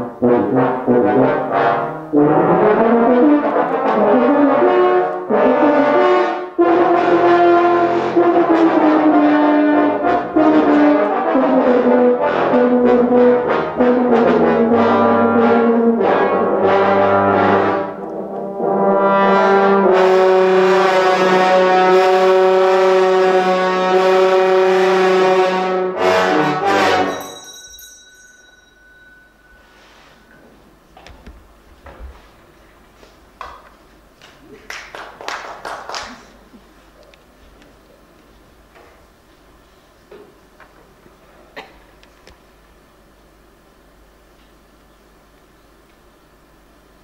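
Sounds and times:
trombones and tubas playing: 0:00.0 - 0:27.3.

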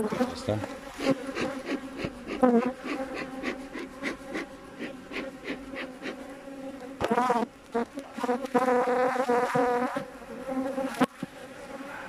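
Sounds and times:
bee flying close past: 0:00.0 - 0:12.0
bees buzzing: 0:00.0 - 0:12.0.

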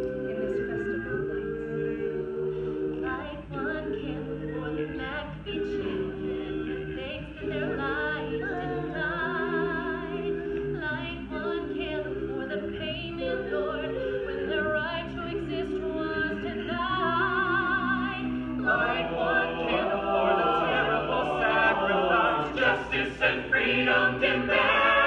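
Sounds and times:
a cappella group singing in harmony: 0:00.0 - 0:25.0.

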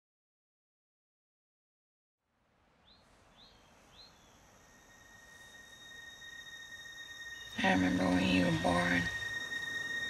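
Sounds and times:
high-pitched insect drone: 0:04.1 - 0:10.0.

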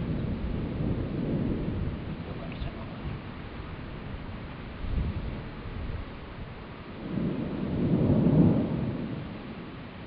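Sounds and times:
thunder rumbling: 0:00.0 - 0:04.2, 0:06.9 - 0:09.9.

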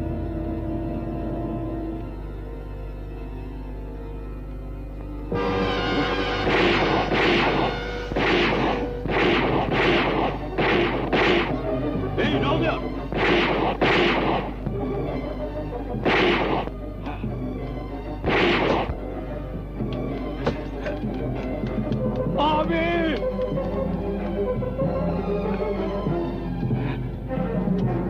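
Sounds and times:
tense film score: 0:00.0 - 0:28.0
gunshots with ringing tails: 0:06.0 - 0:11.8, 0:13.1 - 0:14.9, 0:15.9 - 0:16.7, 0:18.2 - 0:19.0.

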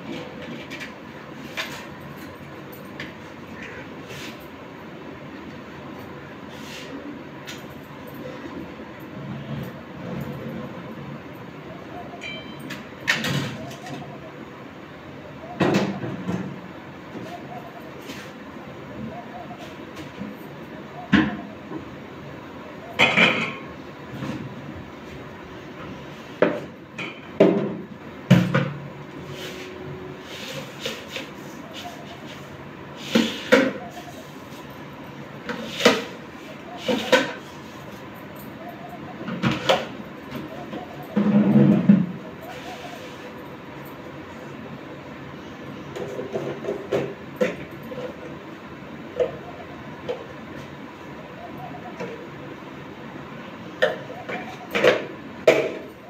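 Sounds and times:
low background hum: 0:00.0 - 0:56.0.

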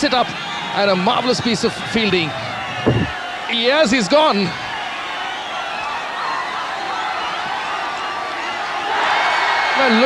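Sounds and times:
crowd cheering and shouting: 0:00.0 - 0:10.0.

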